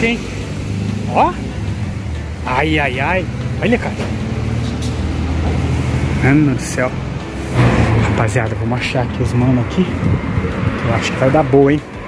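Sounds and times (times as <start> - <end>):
vehicle engine rumbling: 0.0 - 12.0.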